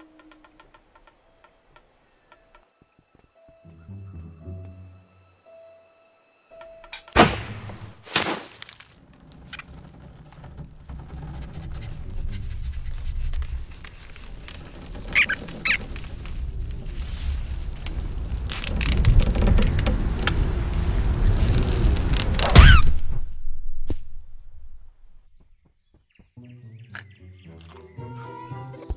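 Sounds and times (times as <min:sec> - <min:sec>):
short high squeaks: 0:14.4 - 0:16.0
low rumble: 0:15.8 - 0:25.4.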